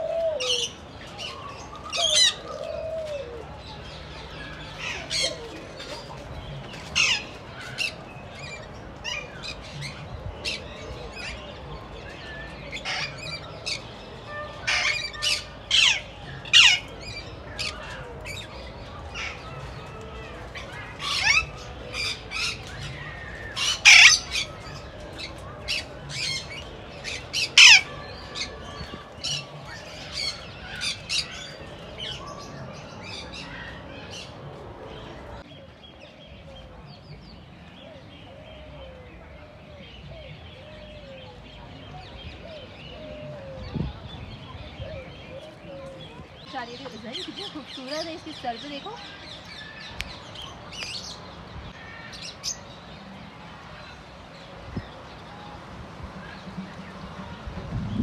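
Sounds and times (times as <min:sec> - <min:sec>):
birds chattering: 0:00.0 - 0:58.0
parakeets squawking: 0:23.5 - 0:24.6.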